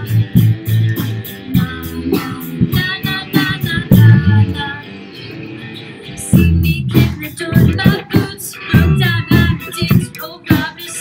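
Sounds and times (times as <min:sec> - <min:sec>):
rock band playing: 0:00.0 - 0:10.1.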